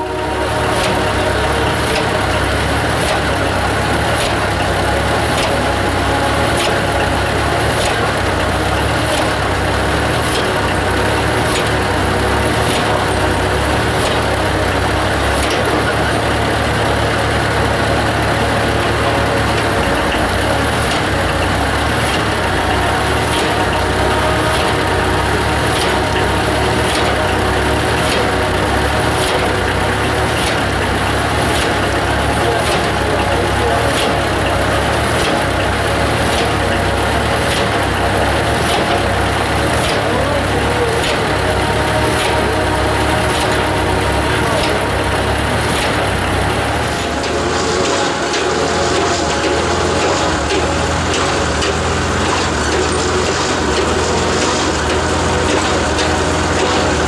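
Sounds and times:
drilling rig engine running: 0.0s - 57.0s.

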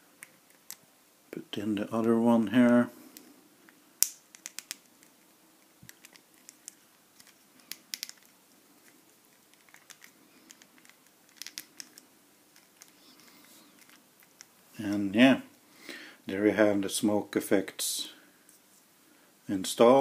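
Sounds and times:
plastic parts clicking: 5.8s - 13.1s, 13.8s - 14.5s.

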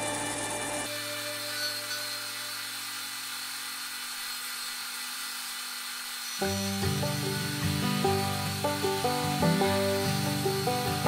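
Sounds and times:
disc sander motor hum: 0.0s - 11.0s
music: 6.4s - 11.0s.

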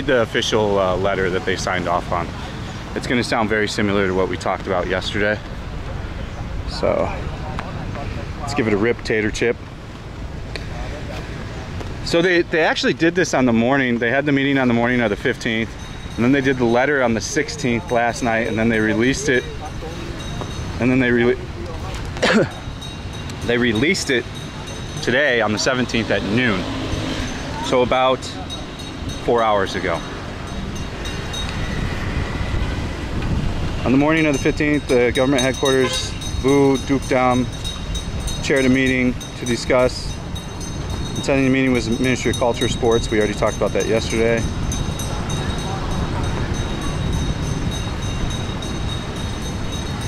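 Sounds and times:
distant traffic rumble: 0.0s - 50.0s
faint voices: 10.2s - 32.9s, 33.7s - 50.0s
wind on microphone: 14.7s - 50.0s.

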